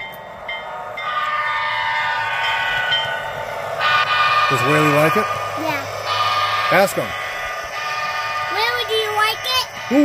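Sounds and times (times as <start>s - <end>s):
model locomotives running: 0.0s - 10.0s.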